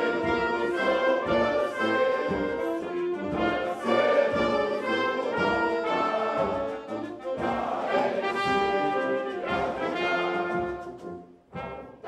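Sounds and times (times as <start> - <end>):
assembly singing along: 0.0 - 10.8
brass band playing: 0.0 - 12.0.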